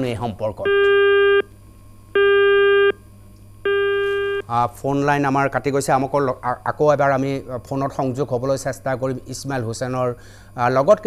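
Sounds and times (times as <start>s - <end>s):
telephone busy tone: 0.7s - 1.5s, 2.2s - 3.0s, 3.6s - 4.4s.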